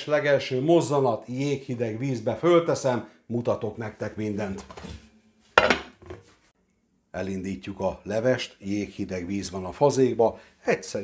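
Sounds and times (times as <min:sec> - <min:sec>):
metal pot lid clanking: 0:05.6 - 0:06.2.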